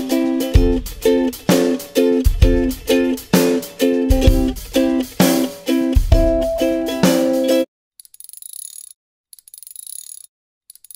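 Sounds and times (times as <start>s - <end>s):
ratchet clicking rapidly: 8.0s - 10.9s.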